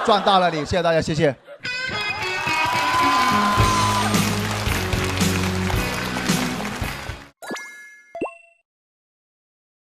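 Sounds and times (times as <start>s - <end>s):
cartoon pop blips: 7.4s - 8.6s.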